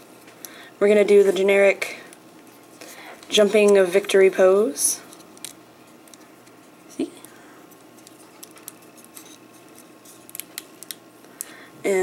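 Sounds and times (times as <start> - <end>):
plastic parts clicking and rubbing: 7.2 - 11.5.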